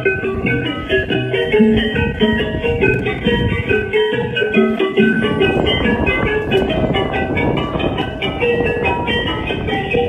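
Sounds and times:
busy melody of plucked notes: 0:00.0 - 0:10.0.

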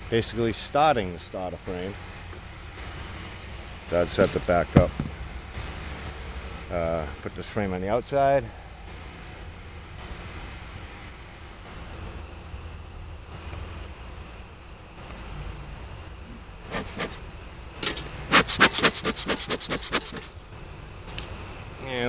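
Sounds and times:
honeybees buzzing: 0:16.5 - 0:20.5.

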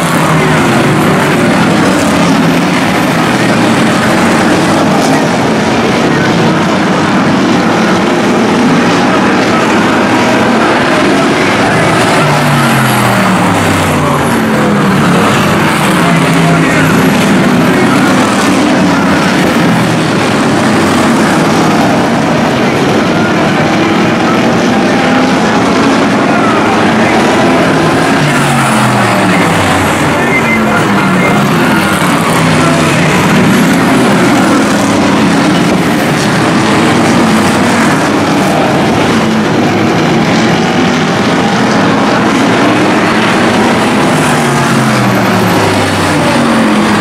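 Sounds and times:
race car engines passing: 0:00.0 - 0:47.0.

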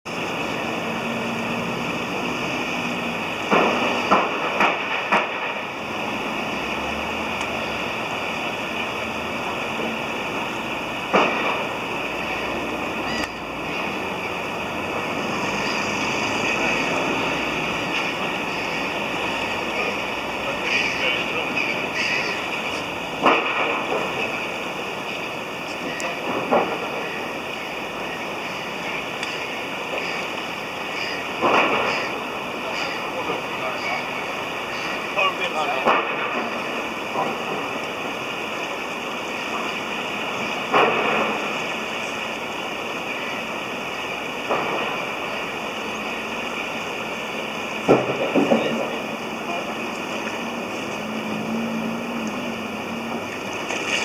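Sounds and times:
water rushing over falls: 0:00.1 - 0:54.0.

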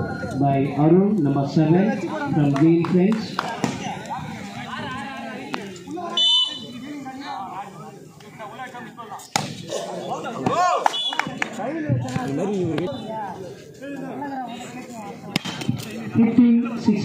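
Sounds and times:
voices of players and spectators: 0:00.0 - 0:17.0
referee's whistle blast: 0:06.1 - 0:06.8, 0:10.8 - 0:11.3
sharp smack: 0:09.3 - 0:09.6.

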